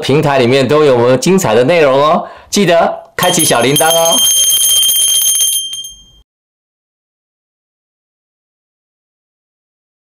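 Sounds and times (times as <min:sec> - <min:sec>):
small bell ringing: 0:03.2 - 0:06.2.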